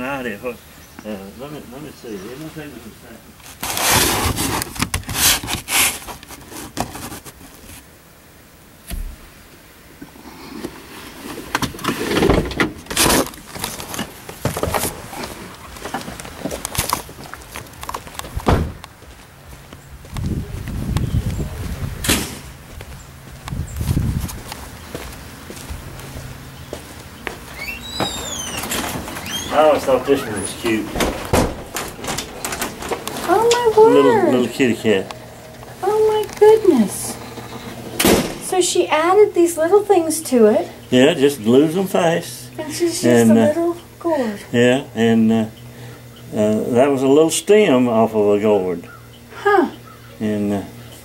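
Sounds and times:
car door opening and shutting: 0:18.2 - 0:18.9, 0:27.5 - 0:33.7, 0:36.7 - 0:38.5
knocks and bumps of handling: 0:30.2 - 0:33.7.

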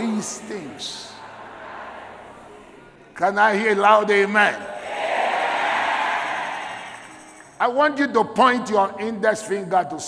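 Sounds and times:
congregation shouting together: 0:04.6 - 0:07.1.

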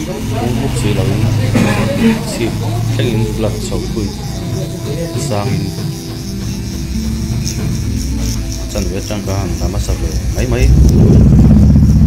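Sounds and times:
voices: 0:00.0 - 0:10.8
loud low machine drone: 0:00.0 - 0:12.0.

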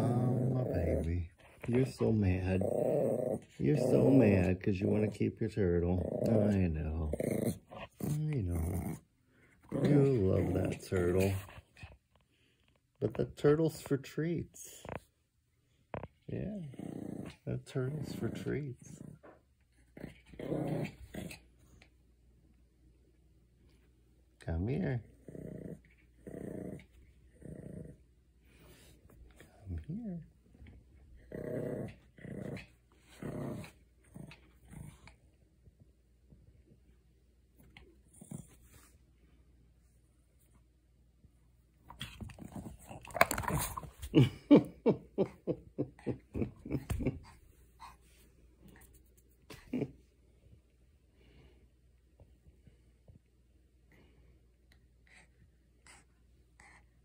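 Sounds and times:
dog growling low: 0:00.0 - 0:11.6, 0:16.4 - 0:21.8, 0:25.0 - 0:28.9, 0:29.6 - 0:35.2.

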